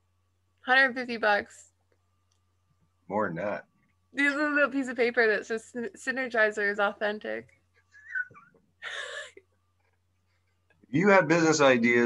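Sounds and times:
woman laughing: 7.9 - 9.6.

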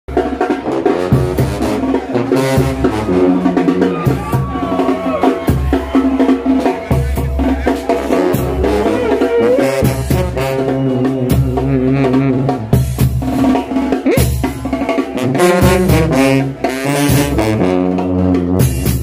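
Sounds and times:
brass band playing: 0.1 - 19.0
drum and cymbal beats: 0.1 - 19.0
sousaphone bass line: 2.7 - 12.8.

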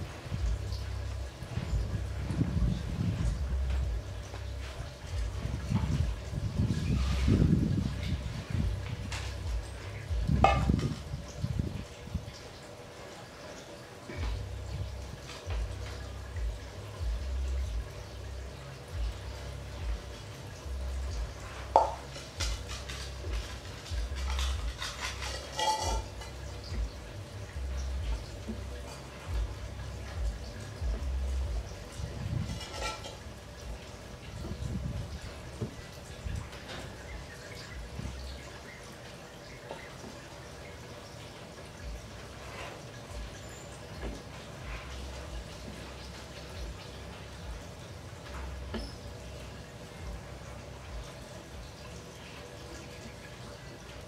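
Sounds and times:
aquarium water bubbling: 0.0 - 54.0
faint pump hum: 0.0 - 54.0.

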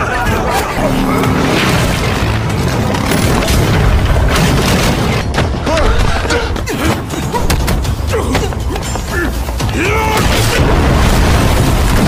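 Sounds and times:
loud action film music: 0.0 - 12.0.

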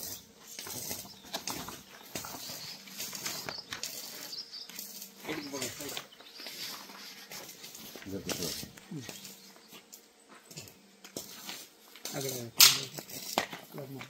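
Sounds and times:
person speaking: 7.9 - 9.3.

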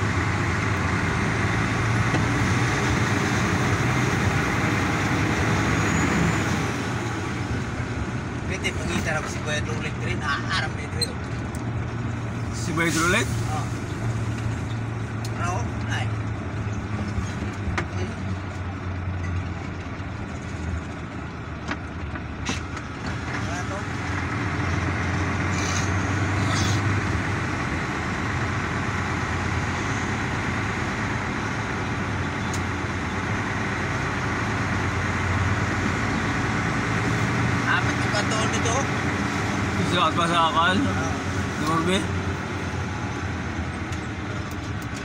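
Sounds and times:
vehicle engine and road hum: 0.0 - 45.0.

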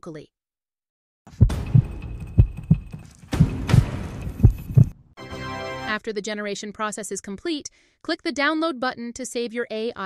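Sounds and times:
heartbeat thumps: 1.3 - 5.0.

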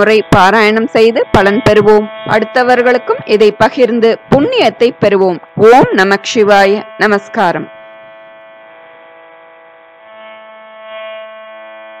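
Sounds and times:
steady hum of held tones: 0.0 - 12.0.

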